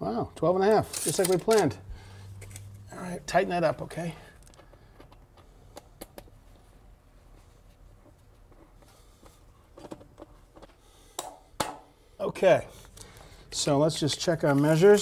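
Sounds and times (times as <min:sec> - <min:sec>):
wrench clicks and scrapes: 0:00.8 - 0:01.8.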